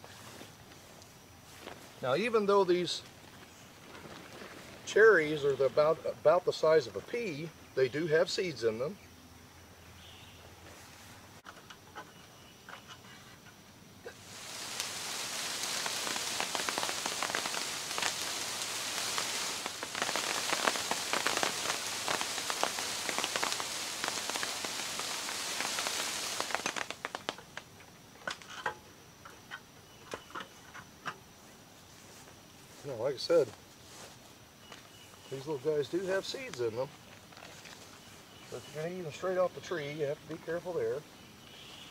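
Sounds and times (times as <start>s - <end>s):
cherries pattering onto plastic tarp: 14.2s - 27.7s.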